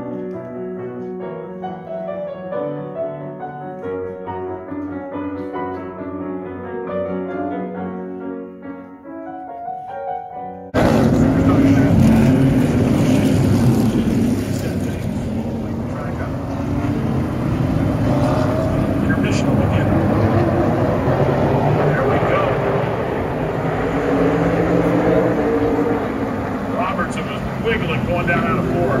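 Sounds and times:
race car engines passing: 0:10.8 - 0:29.0.

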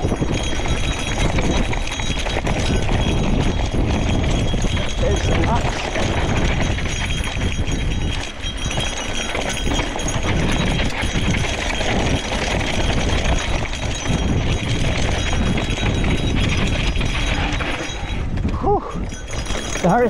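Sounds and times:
bike rattling: 0:00.0 - 0:20.0
bike tyres rolling on dirt trail: 0:00.0 - 0:20.0
wind rumble on microphone: 0:00.0 - 0:20.0.

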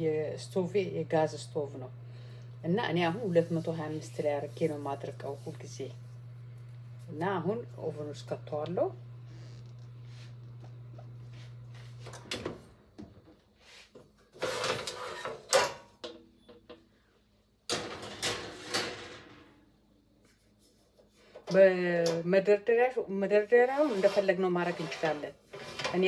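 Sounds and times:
steady low hum: 0:00.0 - 0:13.4.

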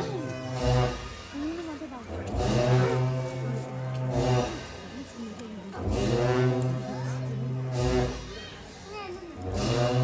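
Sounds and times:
long horns low drone: 0:00.0 - 0:01.2, 0:02.1 - 0:04.8, 0:05.7 - 0:08.3, 0:09.4 - 0:10.0.

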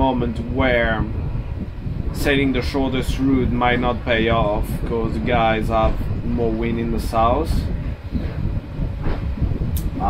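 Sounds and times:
hull moving through water rumble: 0:00.0 - 0:10.0.

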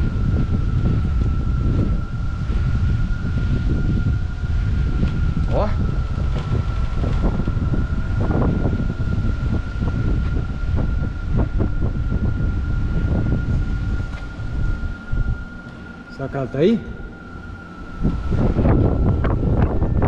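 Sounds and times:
strong wind buffeting microphone: 0:00.0 - 0:20.0
thin high whine: 0:00.0 - 0:20.0.

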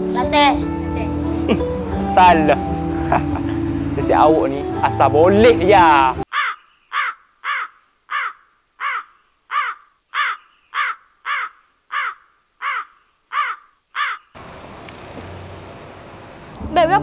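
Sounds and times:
crow cawing: 0:06.3 - 0:14.4.

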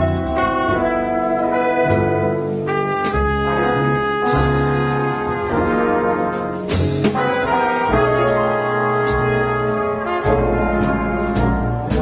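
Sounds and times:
horn section playing jazz ballad: 0:00.0 - 0:12.0.

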